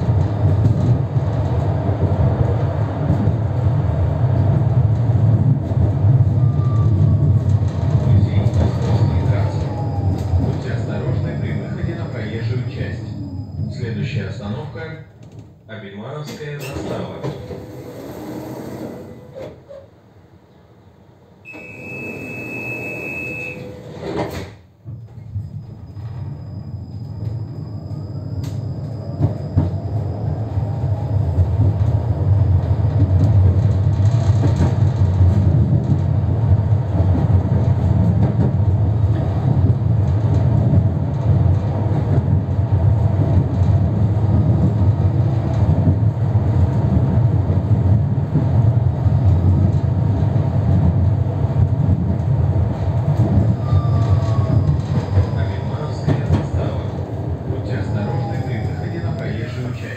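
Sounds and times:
tram passing close by: 0:00.0 - 0:15.6, 0:16.6 - 0:59.9
tram rumbling on rails: 0:00.0 - 0:59.9.

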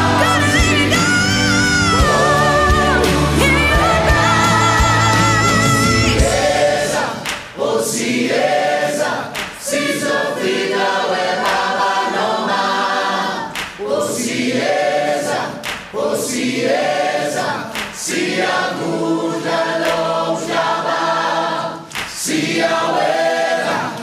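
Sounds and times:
choir singing with vibrato: 0:00.0 - 0:24.0.

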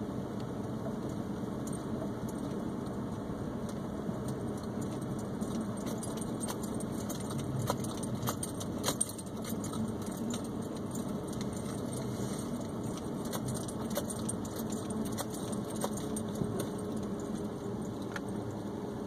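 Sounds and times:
car engine and tyres rumbling: 0:00.0 - 0:19.0
light clicks and rattles: 0:03.7 - 0:18.4.

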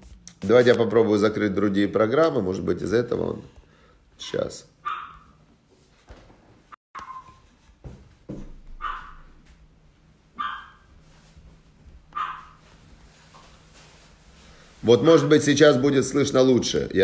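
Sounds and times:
dog barking: 0:04.8 - 0:05.4, 0:08.7 - 0:09.4, 0:10.4 - 0:10.9, 0:12.1 - 0:12.6.

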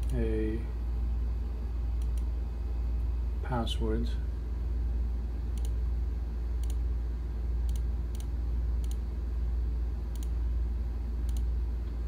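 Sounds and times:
low electrical hum: 0:00.0 - 0:12.0
computer mouse clicks: 0:02.0 - 0:02.3, 0:05.5 - 0:05.8, 0:06.6 - 0:06.8, 0:07.7 - 0:09.0, 0:10.1 - 0:10.4, 0:11.3 - 0:11.5.

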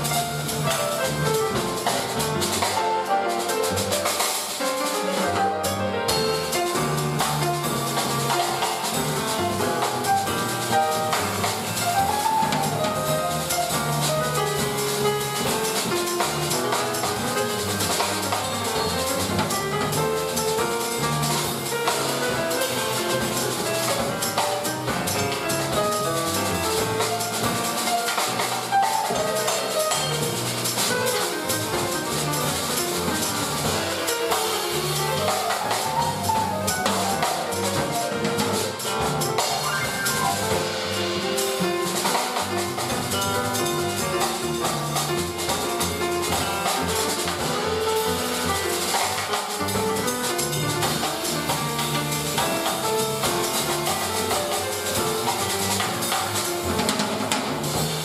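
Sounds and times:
drum kit with cymbals: 0:00.0 - 0:58.0
grand piano: 0:00.0 - 0:58.0
upright double bass: 0:00.0 - 0:58.0.

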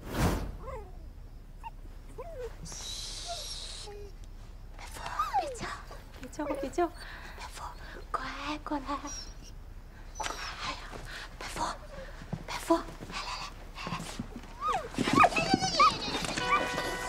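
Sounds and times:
dog whimpering: 0:01.6 - 0:04.2, 0:04.8 - 0:12.3, 0:13.2 - 0:17.0.

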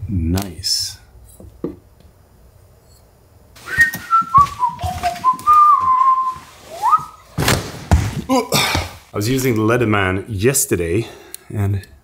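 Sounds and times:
soft footsteps: 0:03.6 - 0:09.2
person whistling a tune: 0:03.7 - 0:07.2.

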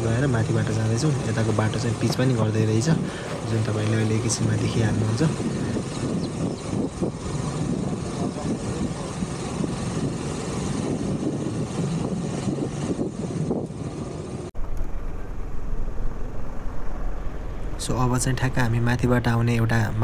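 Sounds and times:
wind buffeting microphone: 0:00.0 - 0:20.0
low rumble: 0:02.9 - 0:20.0.

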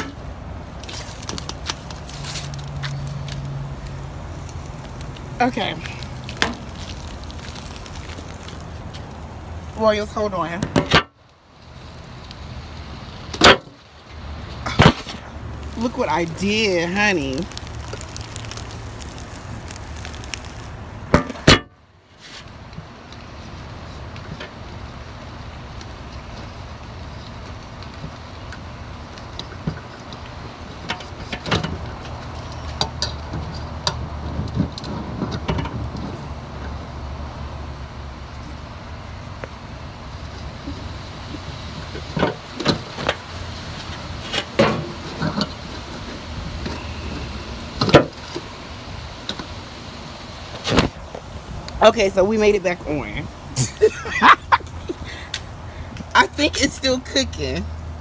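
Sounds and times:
low outdoor rumble: 0:00.0 - 0:58.0.

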